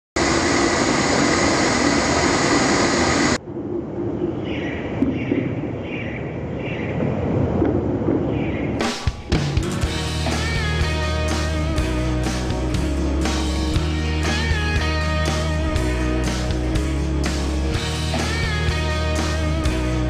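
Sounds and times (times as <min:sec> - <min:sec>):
gas burner flame roaring: 0:00.2 - 0:03.4
guitar music: 0:08.9 - 0:20.0.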